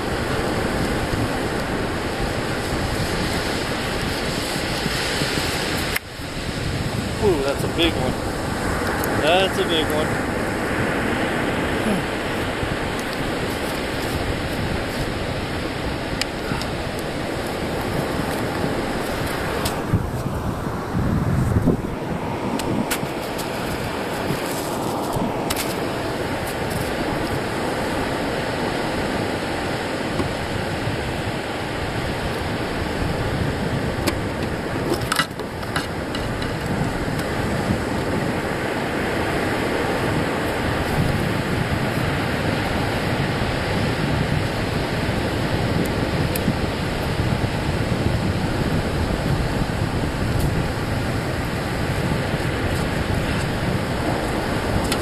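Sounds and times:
surf breaking on beach: 0.0s - 55.0s
wind on microphone: 0.0s - 55.0s.

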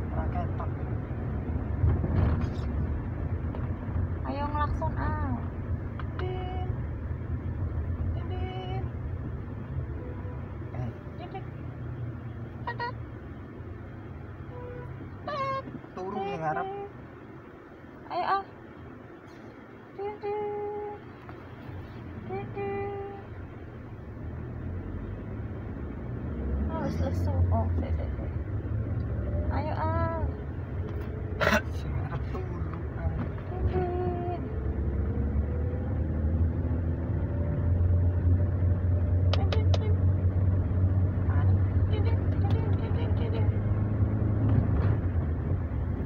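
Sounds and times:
car engine and road rumble: 0.0s - 46.0s.

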